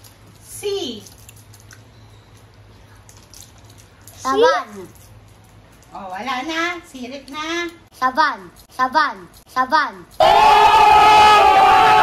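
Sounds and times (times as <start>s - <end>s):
crowd of men shouting: 10.2s - 12.0s.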